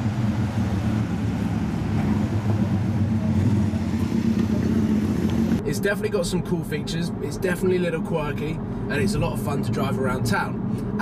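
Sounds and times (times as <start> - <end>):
car engine idling: 0.0 - 5.6.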